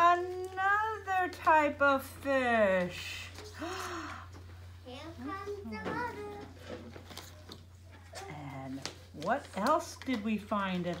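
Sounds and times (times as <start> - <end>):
low electrical hum: 0.0 - 11.0
scattered room sounds: 0.0 - 11.0
child's high-pitched voice: 4.9 - 6.6.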